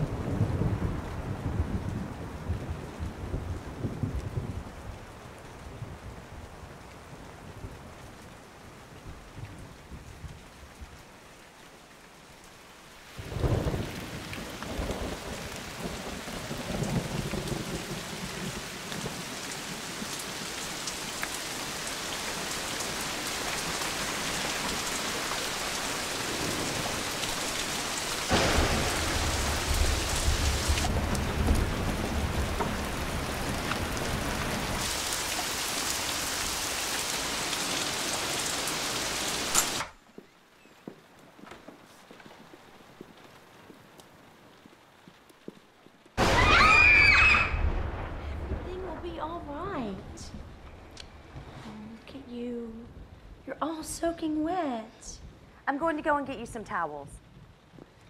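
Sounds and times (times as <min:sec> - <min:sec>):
deep rumble of thunder: 0:00.0 - 0:06.5, 0:13.1 - 0:20.2, 0:25.6 - 0:35.6, 0:46.2 - 0:50.7
heavy rain falling: 0:00.0 - 0:54.6
deep rumble: 0:28.3 - 0:34.8, 0:47.4 - 0:50.8
high wavering scream: 0:46.2 - 0:47.7.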